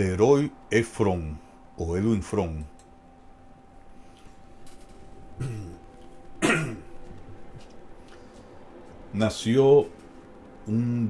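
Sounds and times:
man coughing: 0:05.4 - 0:07.0.

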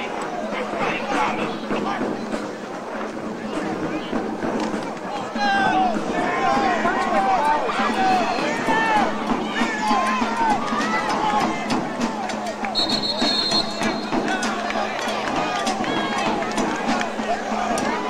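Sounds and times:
crowd shouting and cheering: 0:00.0 - 0:18.0
referee's whistle: 0:12.7 - 0:14.4.

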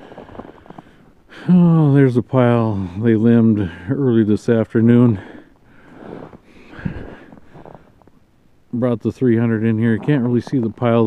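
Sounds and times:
footsteps crunching on frozen ground: 0:00.0 - 0:01.0, 0:06.0 - 0:08.0.

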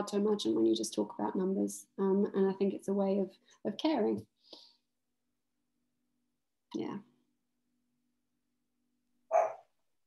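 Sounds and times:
small dog barking: 0:09.3 - 0:09.7.

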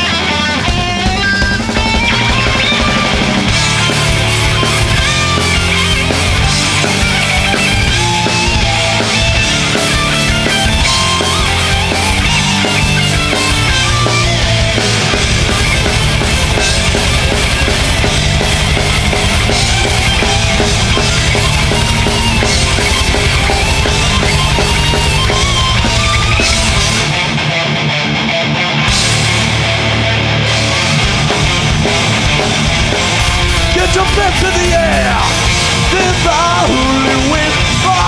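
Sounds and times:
heavy metal band playing: 0:00.0 - 0:38.0.

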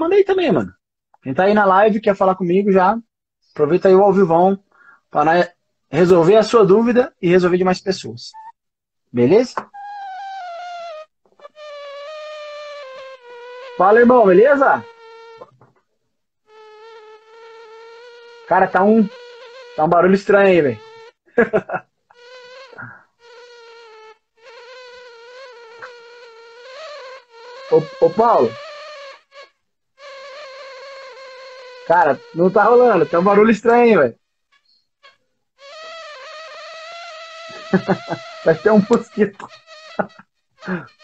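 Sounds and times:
person speaking: 0:03.6 - 0:08.5, 0:09.1 - 0:09.7, 0:13.8 - 0:14.9, 0:18.5 - 0:19.2, 0:19.8 - 0:20.9, 0:27.7 - 0:28.6, 0:31.9 - 0:34.2, 0:37.8 - 0:39.6, 0:40.6 - 0:40.9
steady buzzing tone: 0:10.1 - 0:15.6, 0:16.5 - 0:21.2.

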